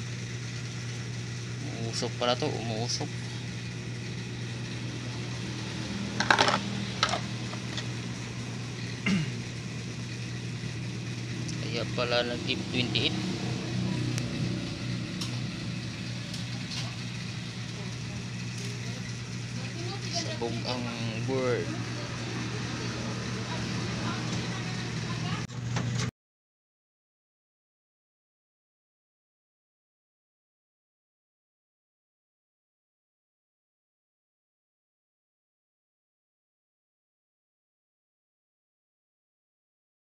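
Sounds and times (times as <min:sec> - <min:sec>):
steady low hum: 0:00.0 - 0:25.5
clatter of metal parts: 0:06.2 - 0:07.9
faint voices: 0:21.6 - 0:25.4.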